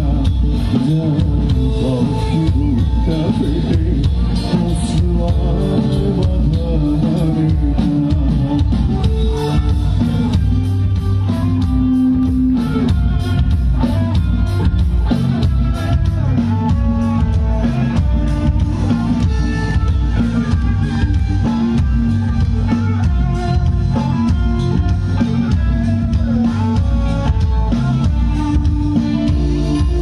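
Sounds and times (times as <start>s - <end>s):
bass: 0.0s - 30.0s
drum kit beat: 0.0s - 30.0s
electric guitar: 0.0s - 30.0s.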